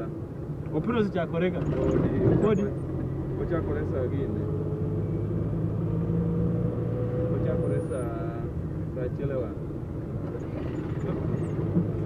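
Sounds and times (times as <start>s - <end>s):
engine and road hum in cabin: 0.0s - 12.0s.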